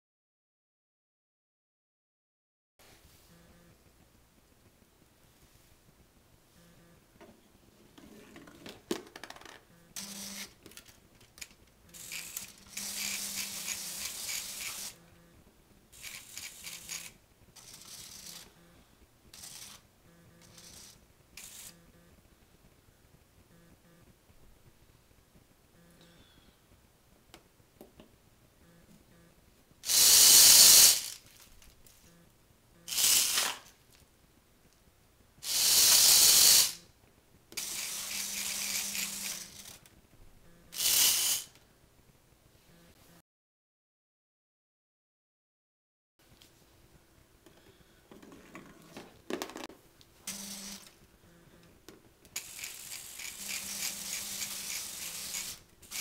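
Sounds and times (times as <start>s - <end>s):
toy motors and gears whirring: 9.4s - 15.1s, 15.9s - 18.7s, 19.3s - 22.0s, 29.8s - 32.2s, 32.8s - 33.7s, 35.4s - 36.8s, 37.6s - 39.9s, 40.6s - 41.6s, 50.2s - 51.0s, 52.4s - 56.0s.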